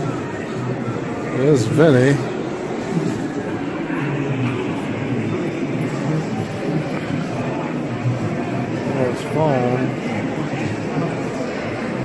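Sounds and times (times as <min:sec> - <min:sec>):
busy indoor hall murmur: 0:00.0 - 0:12.0.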